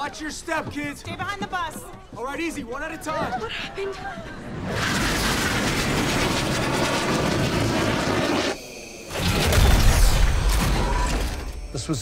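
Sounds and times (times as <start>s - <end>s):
rocket thrusters rushing: 4.6s - 10.6s.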